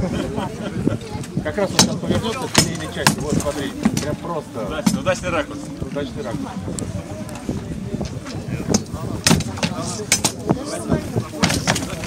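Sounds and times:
crowd chatter: 0:00.0 - 0:12.0
blows knocking wooden shields: 0:08.7 - 0:10.6.

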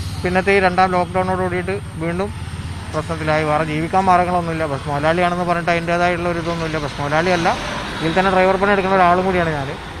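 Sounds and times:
man speaking: 0:00.2 - 0:09.8.

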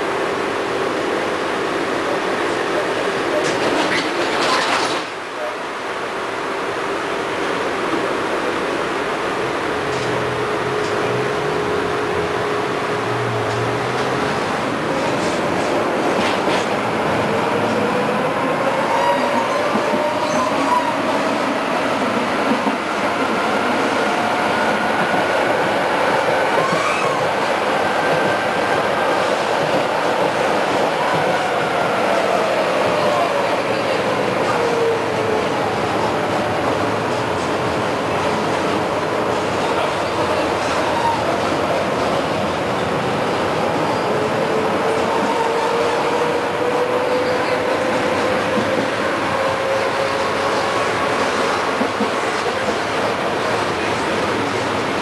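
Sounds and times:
tram wheels on rails: 0:00.0 - 0:06.1, 0:07.0 - 0:55.0
tram motor whine: 0:07.9 - 0:25.3.

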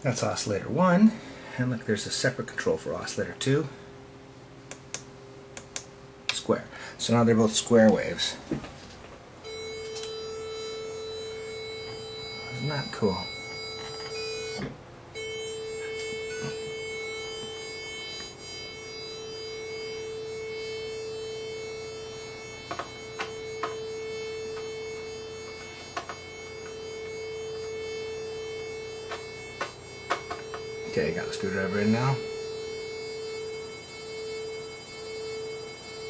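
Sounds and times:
synthesizer holding a steady note: 0:09.4 - 0:36.0.

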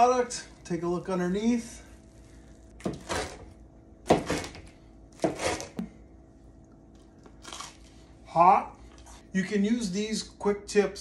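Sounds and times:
knife crunching through pizza crust: 0:07.3 - 0:08.0.

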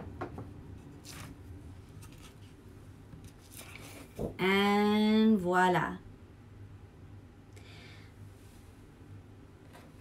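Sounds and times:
faint paper rustling: 0:00.8 - 0:04.4.

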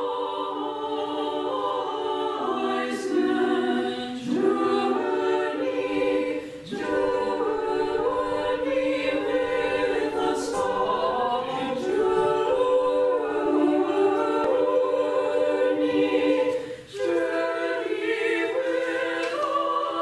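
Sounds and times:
choir singing a cappella chant: 0:00.0 - 0:20.0.

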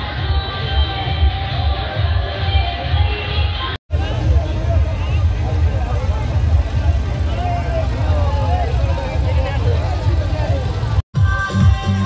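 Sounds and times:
low rumble of vehicles: 0:00.0 - 0:11.8
crowd voices and calls: 0:00.0 - 0:12.0.

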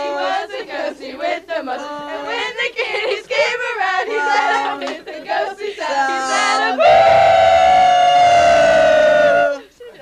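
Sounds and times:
group singing long woo: 0:00.0 - 0:09.7.

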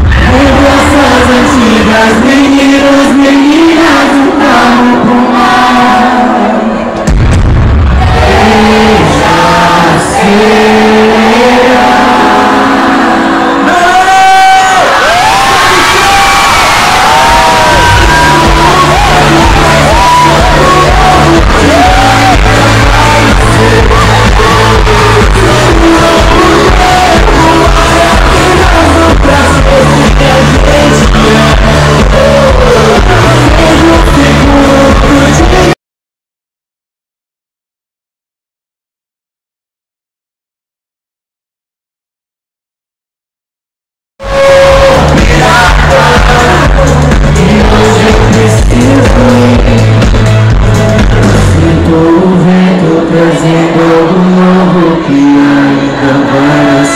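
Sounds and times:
heavy bass beat: 0:00.0 - 0:02.5, 0:07.0 - 0:10.0, 0:15.9 - 0:35.8, 0:44.2 - 0:53.2
crowd noise: 0:00.0 - 0:35.8, 0:44.2 - 0:56.9
live pop concert music: 0:00.0 - 0:35.8, 0:44.2 - 0:56.9.

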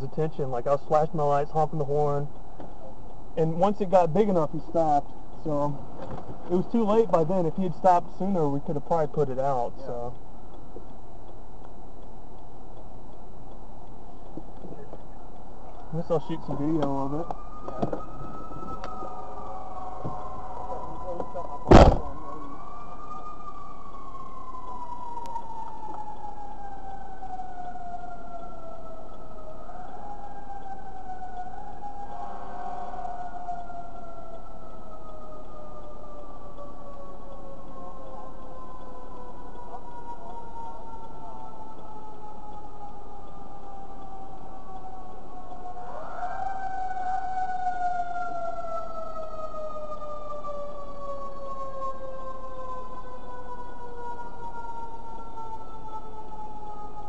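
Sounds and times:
fire engine siren: 0:00.0 - 0:11.2, 0:12.8 - 0:57.0.

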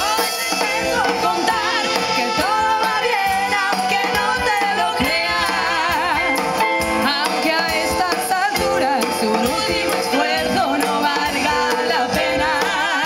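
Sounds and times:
live band playing: 0:00.0 - 0:13.0
women singing with vibrato: 0:00.0 - 0:13.0.

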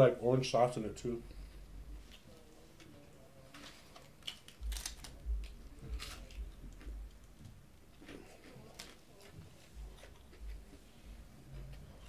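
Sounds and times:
person chewing food: 0:03.8 - 0:12.0
soft low bumps: 0:04.6 - 0:07.8.

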